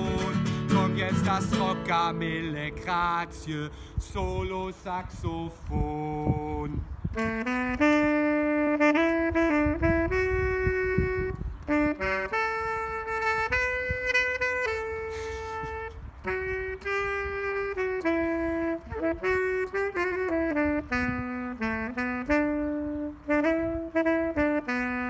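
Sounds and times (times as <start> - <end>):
solo saxophone melody: 0.0 - 5.0, 5.8 - 25.0.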